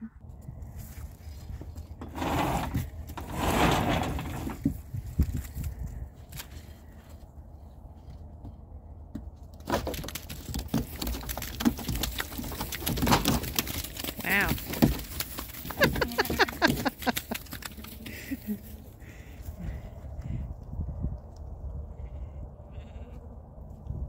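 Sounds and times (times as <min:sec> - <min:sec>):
hooves knocking on wooden floor: 0:08.4 - 0:18.2.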